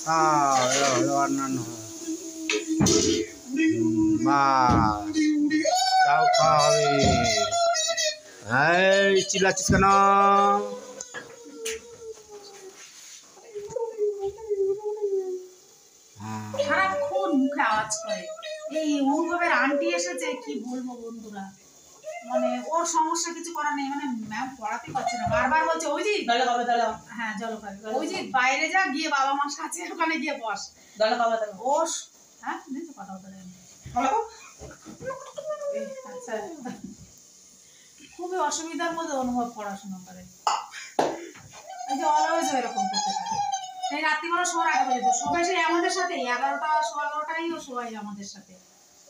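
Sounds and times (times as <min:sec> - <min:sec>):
person's voice: 0:00.0 - 0:02.2, 0:02.8 - 0:07.5
whining call sliding down: 0:00.2 - 0:13.8.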